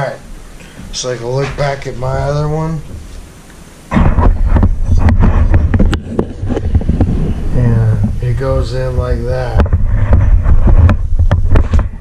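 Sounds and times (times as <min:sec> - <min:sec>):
camera handling rumble: 0:03.9 - 0:08.2, 0:09.5 - 0:12.0
knocks and rubbing: 0:03.9 - 0:12.0.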